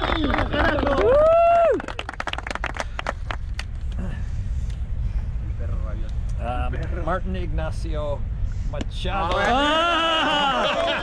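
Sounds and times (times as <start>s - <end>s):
man cheering: 0.0s - 1.9s, 9.3s - 11.0s
scattered hand claps: 0.0s - 3.7s.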